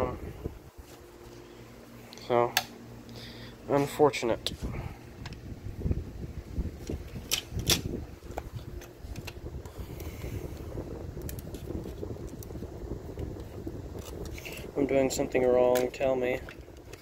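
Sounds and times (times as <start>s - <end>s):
low handling rumble: 0.0s - 17.0s.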